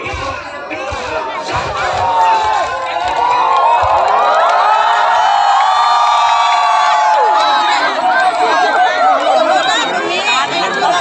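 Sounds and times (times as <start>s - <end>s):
large crowd cheering and whooping: 1.1s - 11.0s.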